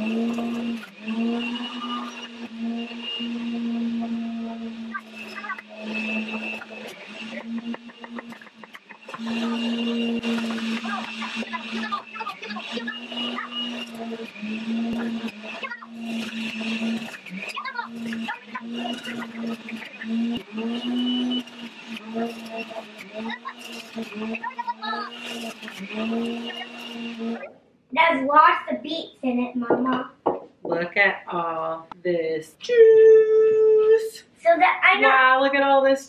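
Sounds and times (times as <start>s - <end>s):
juicer motor humming: 0.0s - 27.7s.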